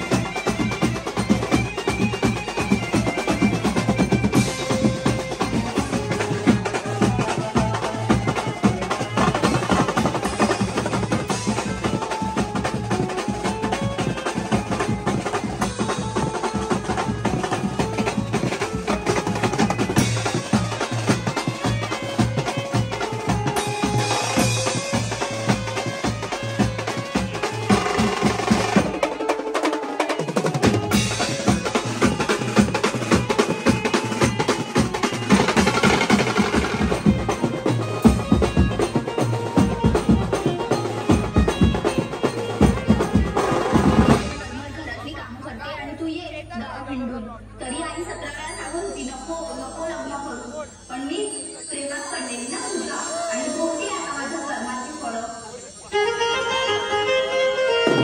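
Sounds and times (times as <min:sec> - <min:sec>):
fast drumming with cymbals: 0:00.0 - 0:45.4, 0:57.1 - 0:58.0
band melody line: 0:00.0 - 0:45.7, 0:47.7 - 0:58.0.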